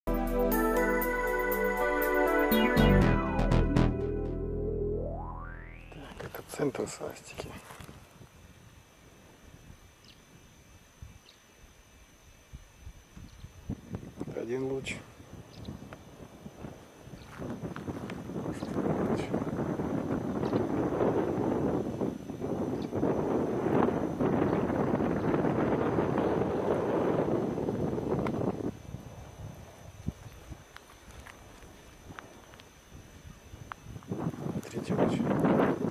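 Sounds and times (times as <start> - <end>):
footsteps through dry scrub: 7.4 - 8.2, 17.2 - 18.9, 30.7 - 32.7.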